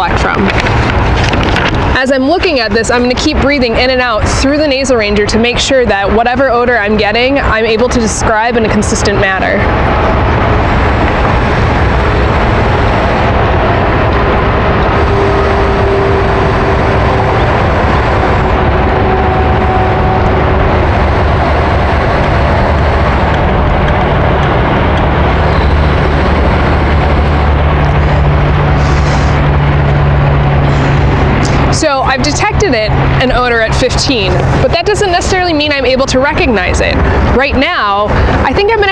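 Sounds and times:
engine-like rumble: 0.0 - 38.9
low hum: 0.0 - 38.9.

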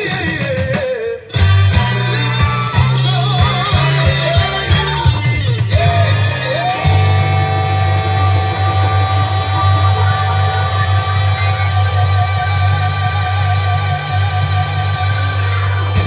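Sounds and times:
blues-rock song on vinyl: 0.0 - 16.0.

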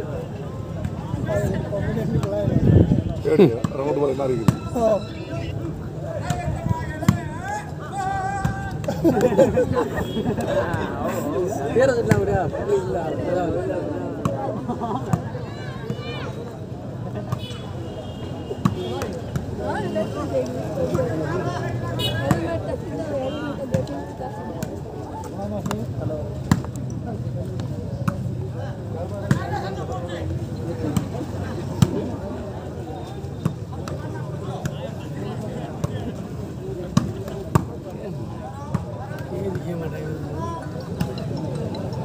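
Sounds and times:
crowd chatter: 0.0 - 42.0.

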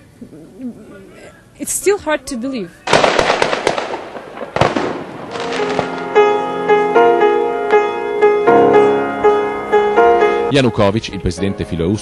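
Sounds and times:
sharp cracks: 2.9 - 6.2.

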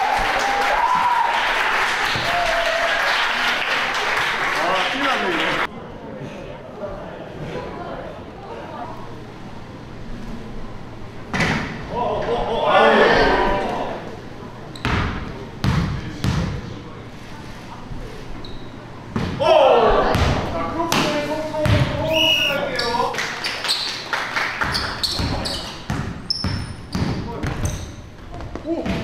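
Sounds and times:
basketball bouncing on wooden court: 24.6 - 29.0.

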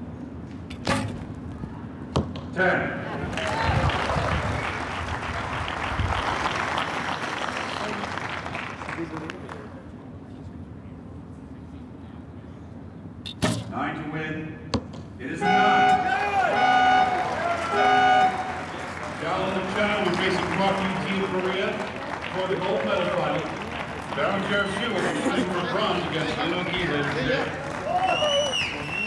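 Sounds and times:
low outdoor background: 0.0 - 29.0.

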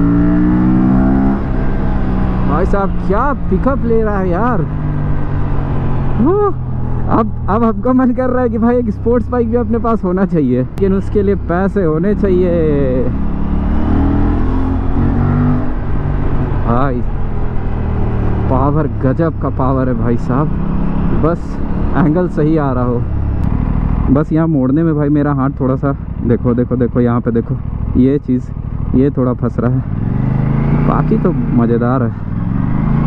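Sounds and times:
motorcycle engine accelerating: 0.0 - 33.0.

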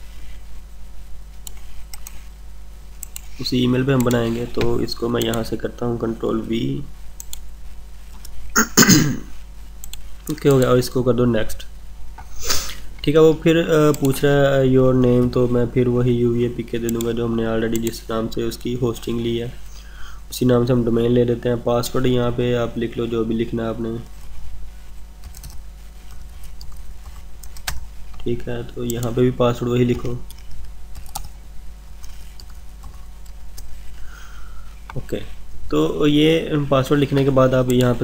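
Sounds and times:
man clearing throat: 8.6 - 9.3
keyboard keys typing: 29.9 - 31.4.

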